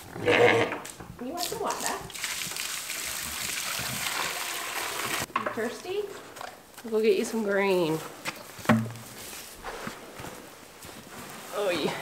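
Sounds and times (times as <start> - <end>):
footsteps: 5.6 - 12.0.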